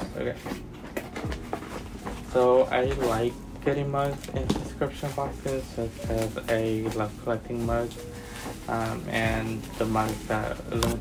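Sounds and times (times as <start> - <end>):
faint clicks and rustles of packaging: 0.0 - 11.0.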